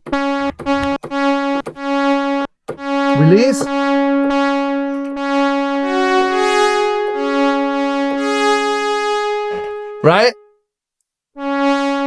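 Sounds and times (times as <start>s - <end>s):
brassy synthesizer chords: 0.0s - 10.7s, 11.4s - 12.0s.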